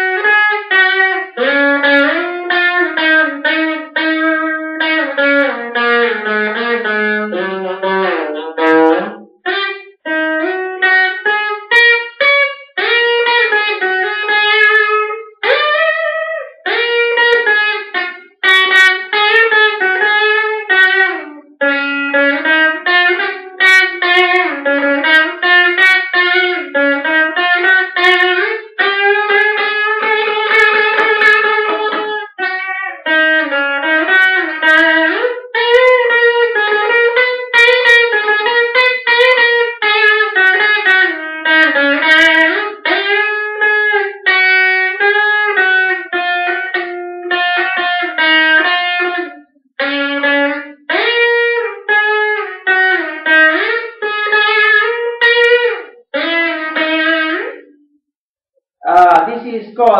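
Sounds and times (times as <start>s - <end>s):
electric guitar melody with bends: 0.0s - 58.0s.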